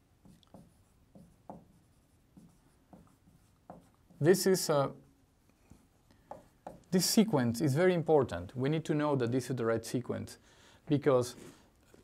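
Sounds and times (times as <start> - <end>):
marker writing on a whiteboard: 0.0 - 4.6, 5.5 - 7.5.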